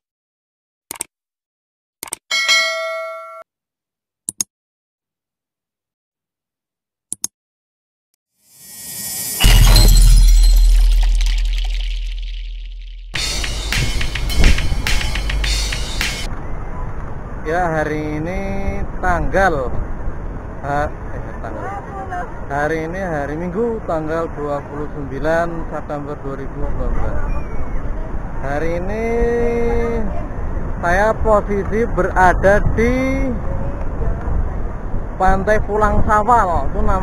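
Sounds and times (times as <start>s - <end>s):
bright bell chime: 2.3s - 3.4s
double mouse click: 4.3s - 4.5s.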